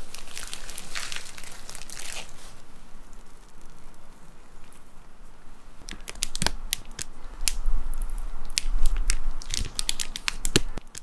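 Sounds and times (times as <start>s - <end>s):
sticky clicks of drizzling chocolate: 5.8s - 11.0s.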